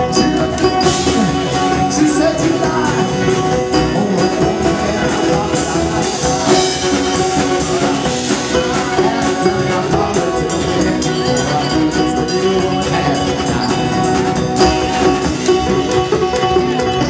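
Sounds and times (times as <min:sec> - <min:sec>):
string band playing: 0:00.0 - 0:17.0.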